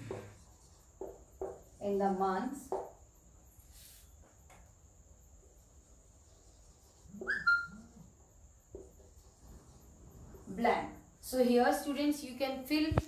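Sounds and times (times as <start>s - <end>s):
crickets chirring: 0.0s - 13.0s.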